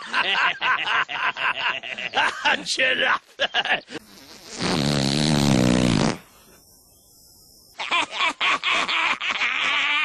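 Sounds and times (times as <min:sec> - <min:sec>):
low buzzing drawn-out noise: 0:03.7 - 0:09.7.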